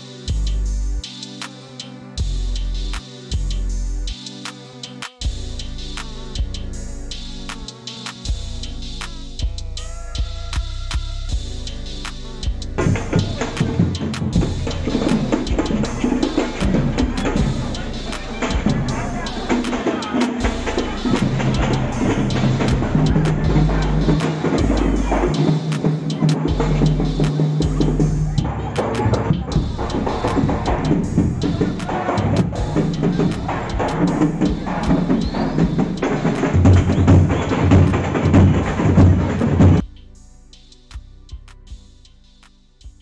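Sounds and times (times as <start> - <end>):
loud music with drum beat: 0.0 - 43.0
crowd voices: 9.8 - 39.8.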